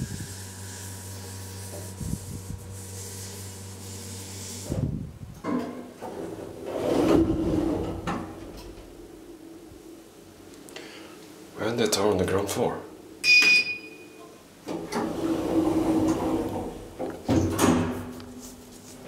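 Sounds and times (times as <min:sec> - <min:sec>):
elevator doors sliding open: 0:06.0 - 0:09.1, 0:14.7 - 0:18.0.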